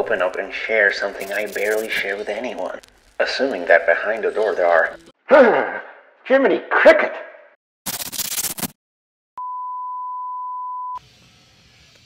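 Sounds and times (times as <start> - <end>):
faint hiss: 11.0 - 12.0.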